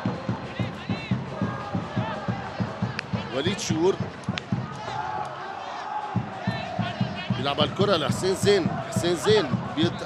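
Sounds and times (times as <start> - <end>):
drum beating steadily: 0.0 - 5.2, 6.0 - 10.0
crowd chanting: 0.0 - 10.0.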